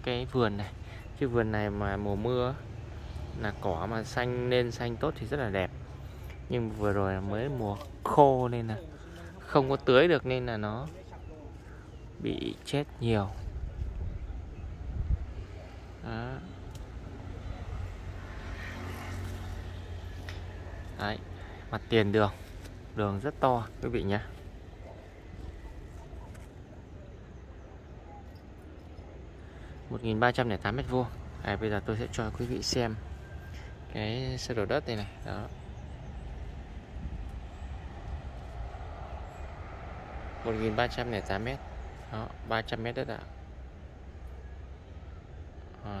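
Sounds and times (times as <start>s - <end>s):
steady low rumble: 28.9s - 45.7s.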